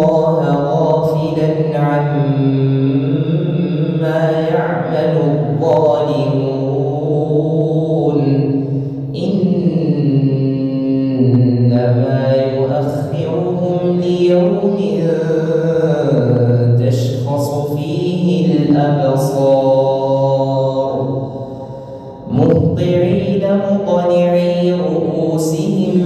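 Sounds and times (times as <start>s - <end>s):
man chanting over loudspeaker: 0.0s - 26.0s.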